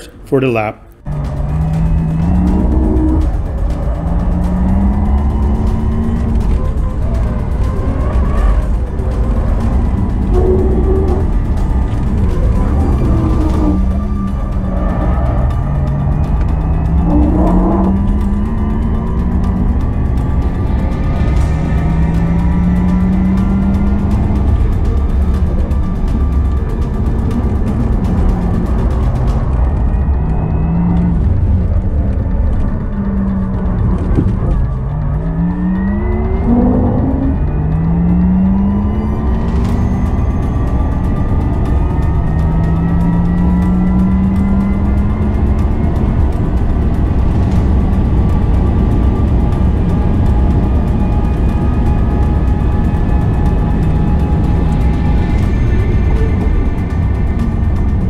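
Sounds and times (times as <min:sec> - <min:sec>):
low road and tyre rumble: 0:00.0 - 0:58.0
electric car drive whine: 0:01.0 - 0:58.0.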